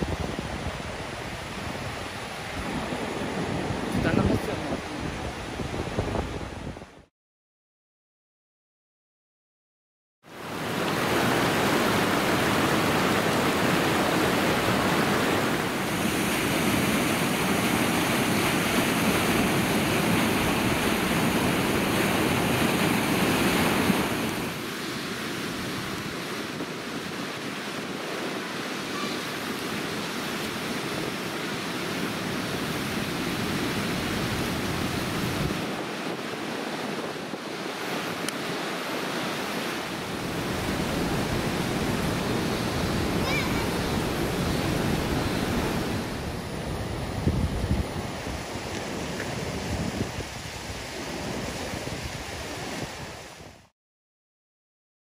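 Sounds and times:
river water rushing over rocks: 38.0s - 47.1s.

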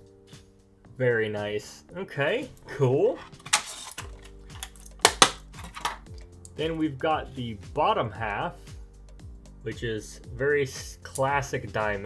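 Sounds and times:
plastic clicks and cracks: 3.4s - 6.6s.

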